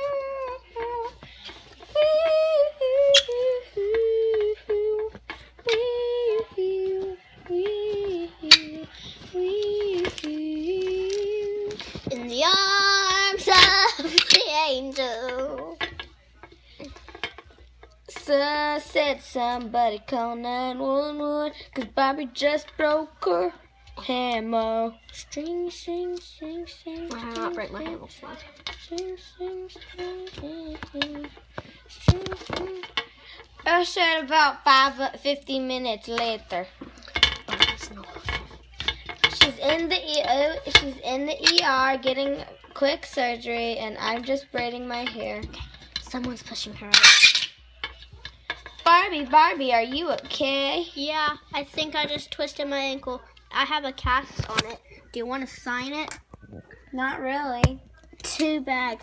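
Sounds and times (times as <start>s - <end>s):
girl singing wordless notes: 0.0s - 16.0s, 17.7s - 47.0s.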